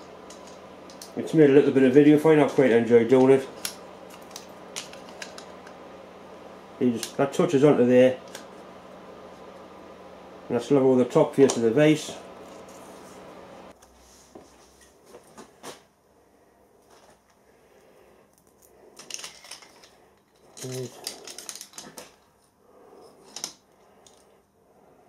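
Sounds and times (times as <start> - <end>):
small metal parts clinking: 18.4 - 22.2.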